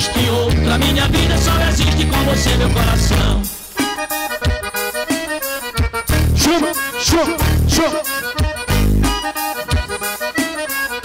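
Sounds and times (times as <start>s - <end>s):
accordion melody with band: 0.0s - 11.0s.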